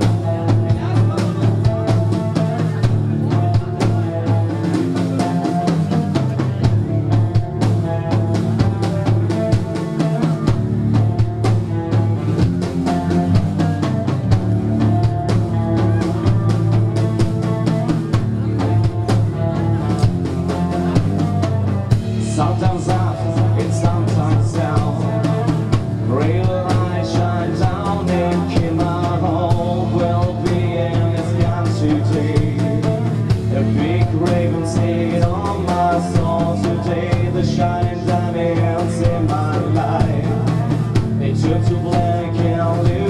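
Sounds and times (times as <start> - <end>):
drum kit: 0.0 - 43.0
electric guitars: 0.0 - 43.0.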